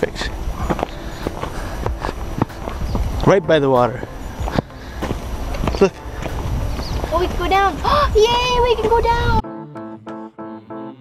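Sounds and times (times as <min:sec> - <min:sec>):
footsteps on dirt trail: 0:00.0 - 0:09.4
wind buffeting microphone: 0:00.0 - 0:09.4.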